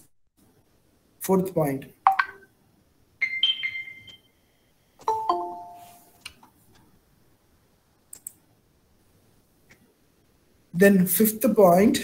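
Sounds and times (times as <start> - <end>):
two-note notification chime: 5.1 - 6.1
faint clicks: 8.1 - 8.4.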